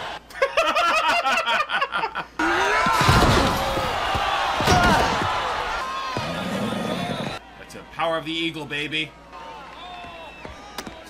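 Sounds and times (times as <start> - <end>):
crowd shouting: 2.4 - 7.7.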